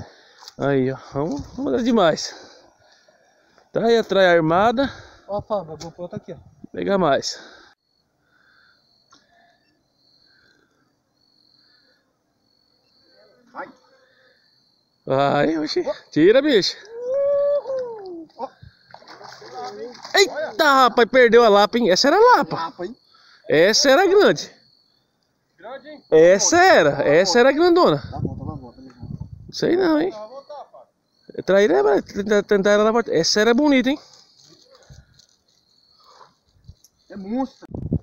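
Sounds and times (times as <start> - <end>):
high-pitched insect buzz: 18.4 - 37.8.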